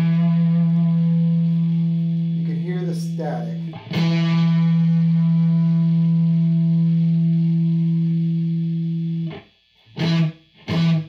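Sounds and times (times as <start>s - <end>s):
electric guitar low held note: 0.0s - 9.4s.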